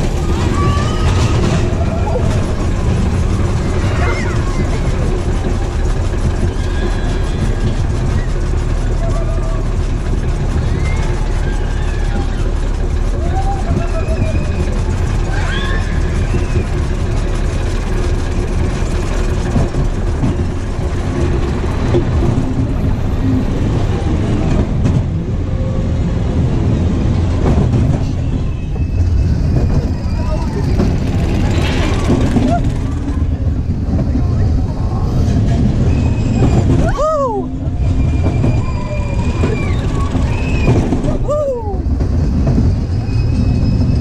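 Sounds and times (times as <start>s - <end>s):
distant voices: 0.0s - 25.4s, 26.0s - 44.0s
roller coaster car rumbling: 0.0s - 44.0s.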